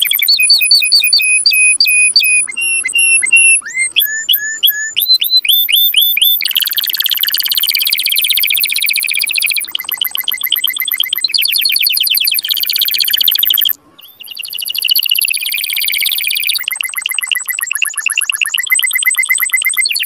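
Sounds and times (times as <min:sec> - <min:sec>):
canary singing: 0:00.0 - 0:20.0.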